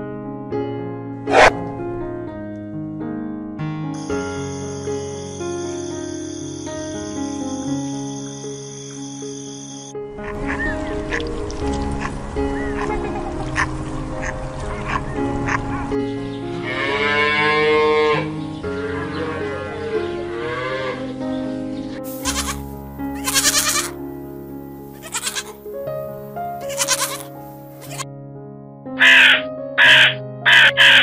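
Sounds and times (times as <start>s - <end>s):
background music: 0.4s - 31.0s
goat bleating: 22.1s - 24.0s, 24.9s - 25.7s, 26.6s - 28.0s, 29.0s - 31.0s.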